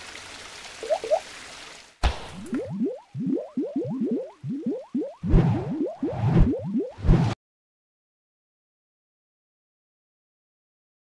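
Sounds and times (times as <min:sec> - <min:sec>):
rushing water-like noise: 0:00.0 - 0:02.6
quick rising blips: 0:02.4 - 0:07.4.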